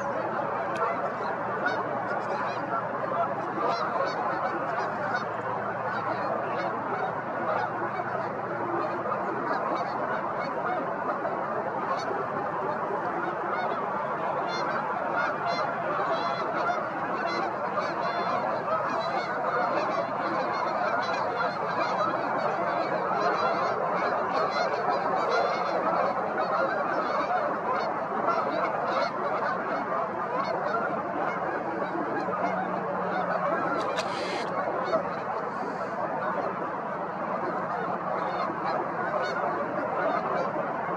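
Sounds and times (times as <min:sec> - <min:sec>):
flock of geese honking: 0:00.0 - 0:40.9.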